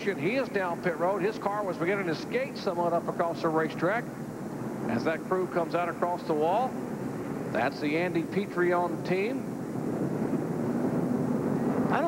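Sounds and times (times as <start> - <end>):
car engines droning: 0.0 - 12.0.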